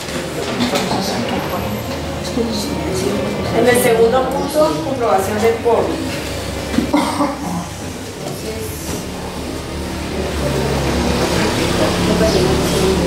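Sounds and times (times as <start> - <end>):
murmur of voices: 0.0 - 13.0.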